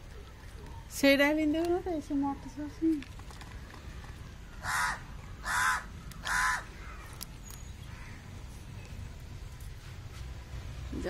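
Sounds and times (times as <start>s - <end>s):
crow cawing: 4.6s - 7.2s, 7.9s - 8.3s.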